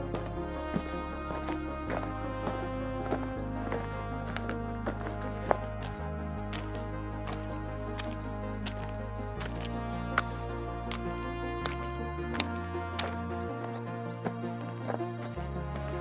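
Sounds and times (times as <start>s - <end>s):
sustained low notes: 0.0s - 16.0s.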